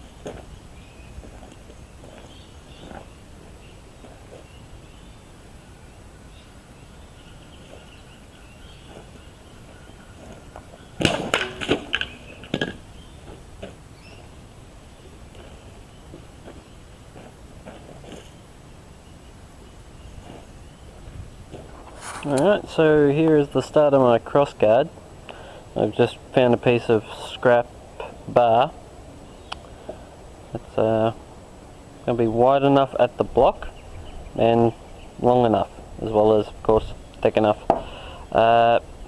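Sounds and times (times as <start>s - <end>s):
faint chirping: 0.0s - 11.0s, 11.9s - 17.1s
sharp knocks and clatters: 11.0s - 12.8s.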